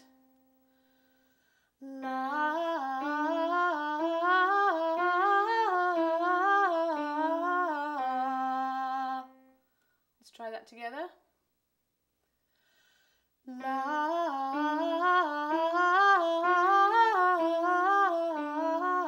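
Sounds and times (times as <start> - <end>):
woman singing vocal warm-up: 1.8 - 9.5, 13.4 - 19.0.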